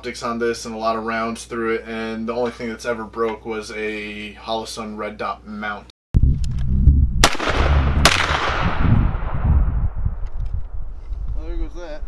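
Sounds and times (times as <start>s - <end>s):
low rumble: 6.2s - 12.0s
rifle shots with echo: 7.2s - 9.5s.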